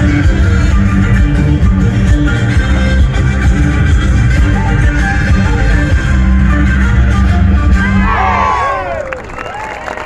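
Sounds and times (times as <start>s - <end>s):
crowd cheering and whooping: 7.8s - 10.0s.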